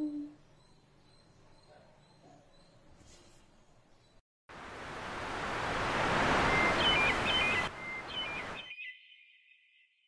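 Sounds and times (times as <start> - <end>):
rushing noise: 4.6 - 8.6
bird whistling: 6.5 - 9.6.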